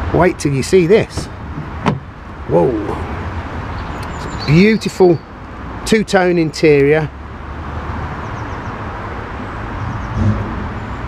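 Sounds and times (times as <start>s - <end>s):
road traffic rumble and hiss: 0.0s - 11.0s.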